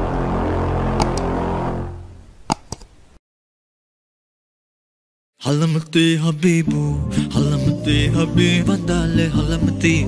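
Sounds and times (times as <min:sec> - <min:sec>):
low sustained drone music: 0:00.0 - 0:02.2
mouse-click sound effects: 0:01.0 - 0:01.3, 0:02.5 - 0:02.9.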